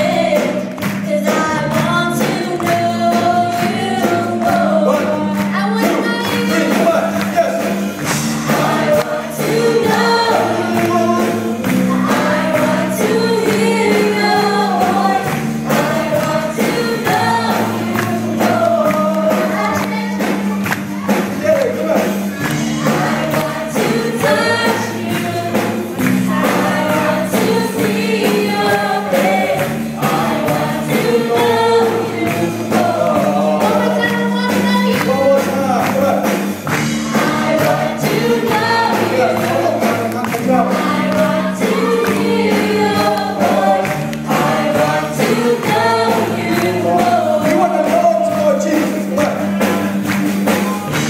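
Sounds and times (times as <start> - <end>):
voices singing together: 0.0 - 51.0
worship band playing: 0.0 - 51.0.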